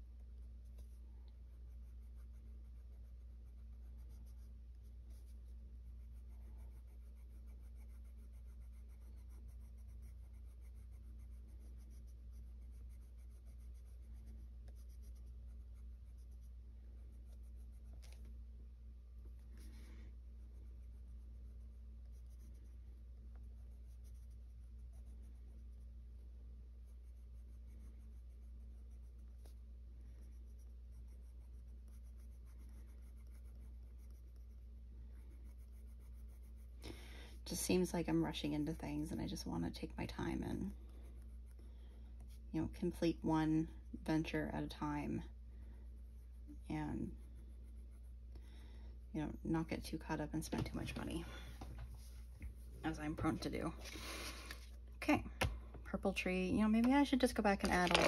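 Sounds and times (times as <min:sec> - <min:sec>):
steady low hum: 0:00.0 - 0:58.0
pencil scratching on paper: 0:00.1 - 0:18.4, 0:19.2 - 0:36.8, 0:37.4 - 0:45.2, 0:45.9 - 0:48.3.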